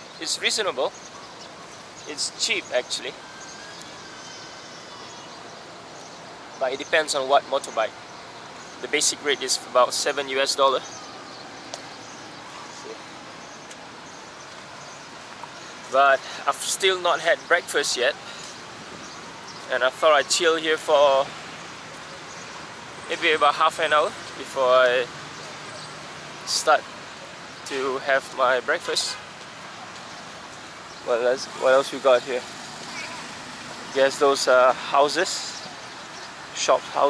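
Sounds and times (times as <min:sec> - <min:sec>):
distant traffic hiss: 0:00.0 - 0:37.0.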